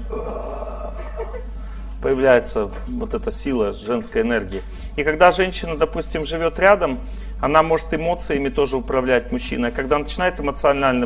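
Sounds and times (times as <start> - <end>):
man humming a hesitation: 0.0 - 1.5.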